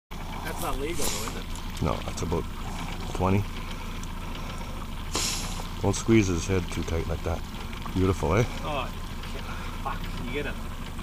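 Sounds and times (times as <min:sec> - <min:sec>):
outboard motor idling: 0:00.1 - 0:11.0
short hiss: 0:05.1 - 0:05.7.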